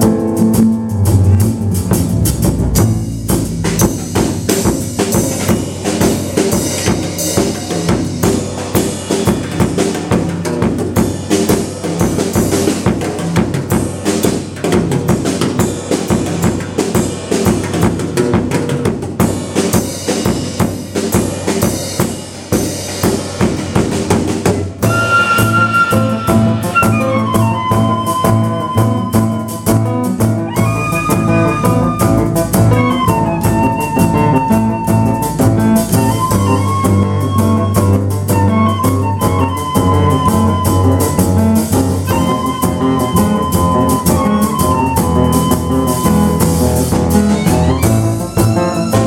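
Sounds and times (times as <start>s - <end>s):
low bass line: 0.0s - 4.5s
jazz drum kit playing: 0.0s - 49.0s
wind instrument melody: 24.8s - 49.0s.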